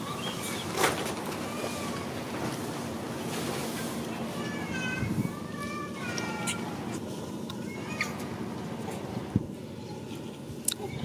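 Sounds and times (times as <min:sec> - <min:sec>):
monkey high-pitched cry: 0:07.8 - 0:08.2.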